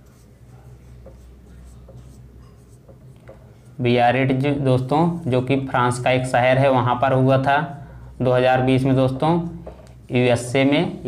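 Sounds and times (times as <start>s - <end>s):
marker writing on whiteboard: 0.0s - 3.8s.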